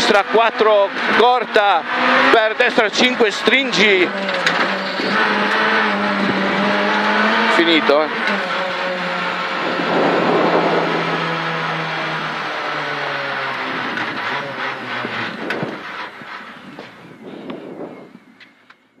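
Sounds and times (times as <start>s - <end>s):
rally car engine slowing: 0.0s - 18.7s.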